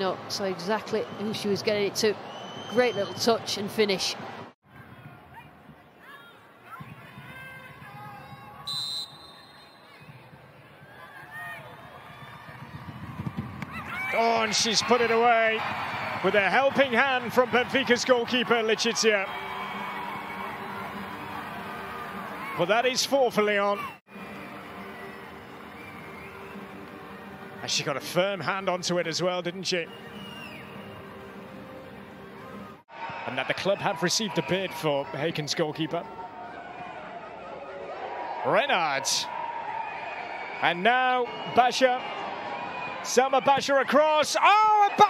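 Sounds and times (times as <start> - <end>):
referee whistle blown: 8.6 - 10.0
players shouting: 13.7 - 24.0, 32.9 - 45.0.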